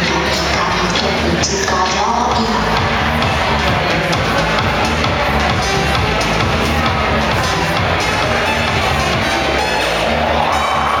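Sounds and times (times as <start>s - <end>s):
live electronic music: 0.0s - 11.0s.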